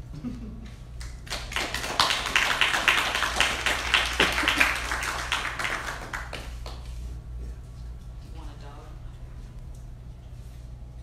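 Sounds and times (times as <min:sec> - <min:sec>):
audience applauding: 0:01.0 - 0:06.9.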